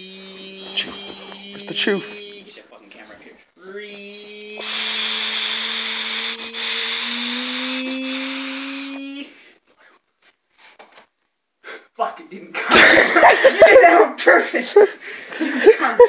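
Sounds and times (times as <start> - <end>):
loud hiss: 4.6 - 8.8.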